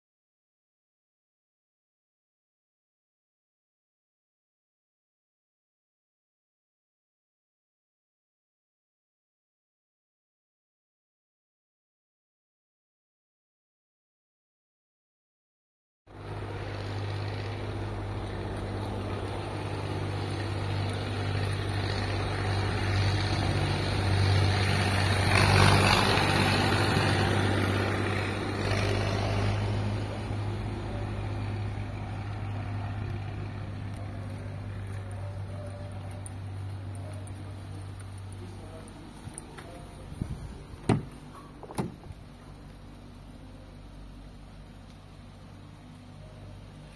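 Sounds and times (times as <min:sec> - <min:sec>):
car engine idling: 0:16.2 - 0:25.0, 0:29.8 - 0:46.9.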